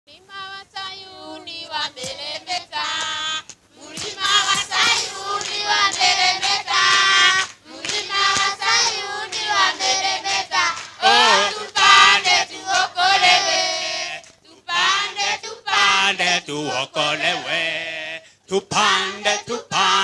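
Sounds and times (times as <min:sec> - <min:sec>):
children's choir singing: 0:00.2 - 0:20.0
hands clapping: 0:02.0 - 0:13.4.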